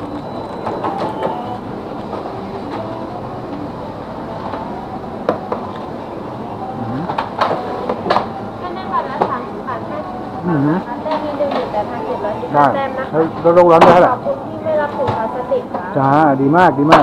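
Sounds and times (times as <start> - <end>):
store checkout din: 0.0 - 3.2.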